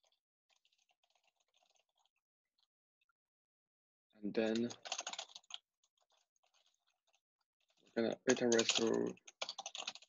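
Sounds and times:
faint keyboard typing: 0.0s - 2.1s, 4.4s - 10.0s.

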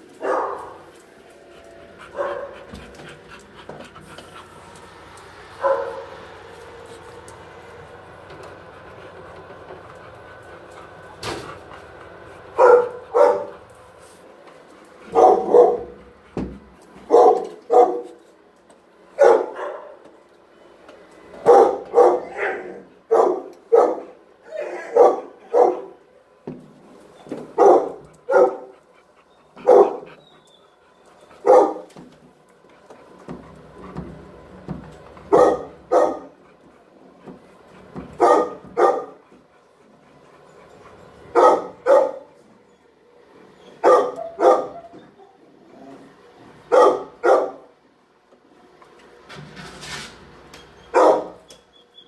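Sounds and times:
dog barking: 0.2s - 0.8s, 2.1s - 2.6s, 5.6s - 6.2s, 12.6s - 13.6s, 15.1s - 16.0s, 17.1s - 18.2s, 19.2s - 20.0s, 21.4s - 26.0s, 27.6s - 28.7s, 29.6s - 30.1s, 31.4s - 31.9s, 35.3s - 36.4s, 38.2s - 39.2s, 41.3s - 42.4s, 43.8s - 44.9s, 46.7s - 47.7s, 50.9s - 51.5s.

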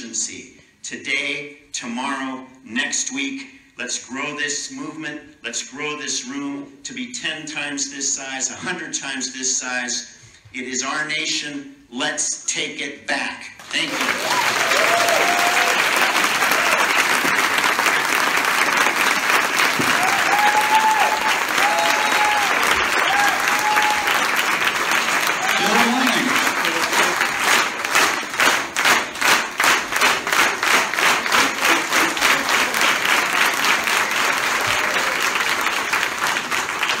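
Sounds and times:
people cheering: 13.6s - 28.0s, 30.2s - 37.0s
crowd applauding: 13.6s - 37.0s
rhythmic clapping in unison: 13.6s - 37.0s.

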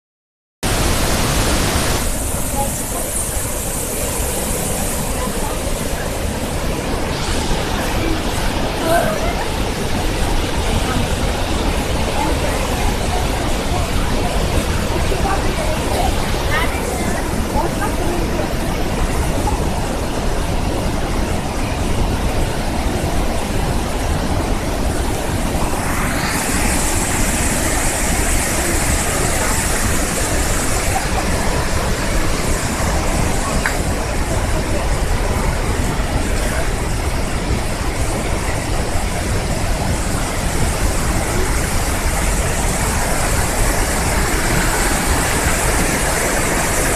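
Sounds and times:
water rushing over rocks: 0.6s - 46.9s.

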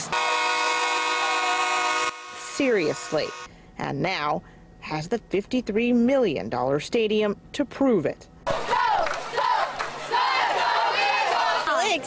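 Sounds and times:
horn blowing a chord: 0.0s - 3.5s.

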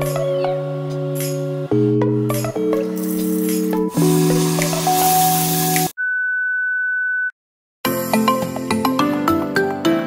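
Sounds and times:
music: 0.0s - 5.9s, 7.8s - 10.0s.

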